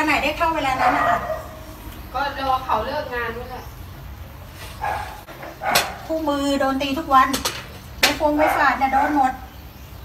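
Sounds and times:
dog barking: 0:00.7 - 0:01.6, 0:04.8 - 0:06.1, 0:08.3 - 0:09.5.

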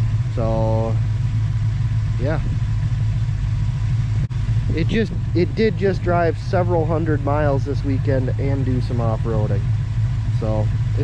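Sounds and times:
engine idling low rumble: 0:00.0 - 0:11.0.

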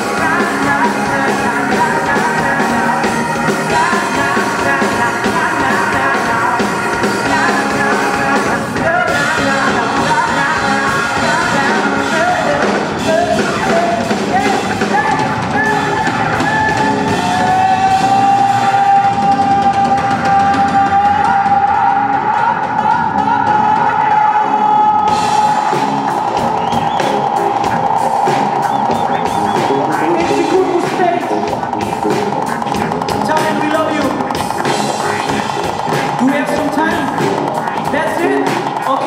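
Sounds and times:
person singing: 0:00.0 - 0:27.3, 0:28.8 - 0:39.0
live rock band playing: 0:00.0 - 0:39.0.

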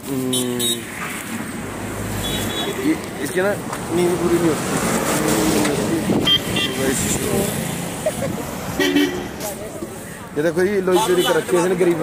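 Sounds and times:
road traffic noise: 0:00.0 - 0:12.0
background voices: 0:02.9 - 0:06.2.

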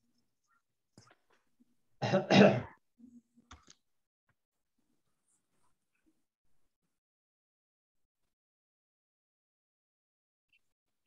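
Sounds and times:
person clearing throat: 0:02.0 - 0:02.8.

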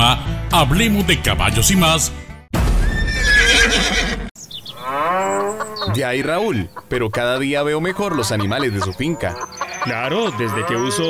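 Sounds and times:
horse neighing: 0:02.8 - 0:06.6, 0:09.1 - 0:11.0
cow lowing: 0:04.7 - 0:06.4.

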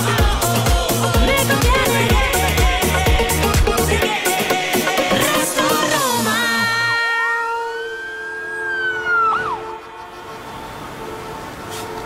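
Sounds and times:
steady low tone: 0:01.1 - 0:04.0
siren-like wailing tone: 0:06.7 - 0:12.0.

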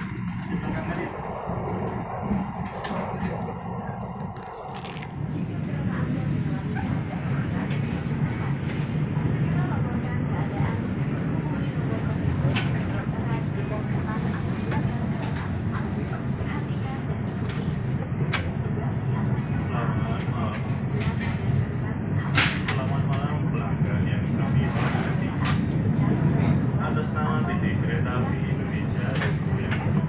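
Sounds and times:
indistinct voices: 0:00.0 - 0:30.0
train carriage hum: 0:00.0 - 0:30.0
plastic packet crinkling: 0:04.4 - 0:05.1.

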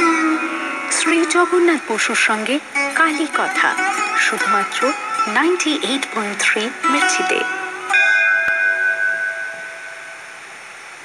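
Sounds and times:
bell-like chime: 0:07.9 - 0:10.4.

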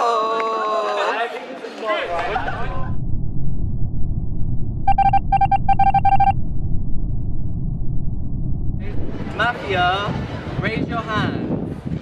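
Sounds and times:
steady low rumble: 0:02.0 - 0:12.0
short electronic beeps: 0:04.9 - 0:06.4.

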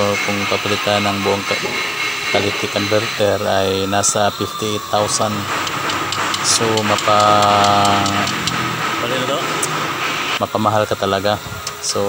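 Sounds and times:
man's drawn-out hesitation sound: 0:00.0 - 0:11.0
steady background hum: 0:00.0 - 0:12.0.

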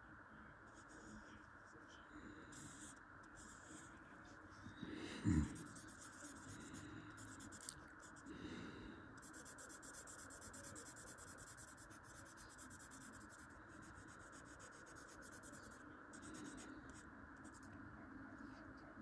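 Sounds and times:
marker rubbing on paper: 0:02.5 - 0:03.9, 0:05.5 - 0:08.3, 0:09.2 - 0:17.7.

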